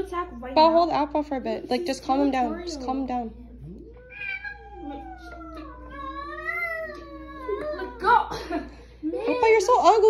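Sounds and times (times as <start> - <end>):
cat yowling: 3.8 - 8.0.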